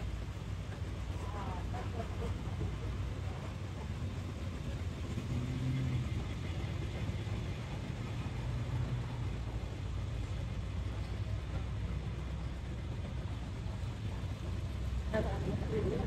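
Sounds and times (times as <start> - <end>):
vehicle engine rumble: 0.0 - 16.0.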